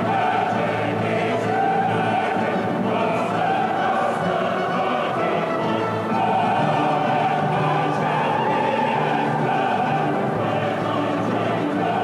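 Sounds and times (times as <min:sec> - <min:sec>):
choir singing with orchestra: 0:00.0 - 0:12.0.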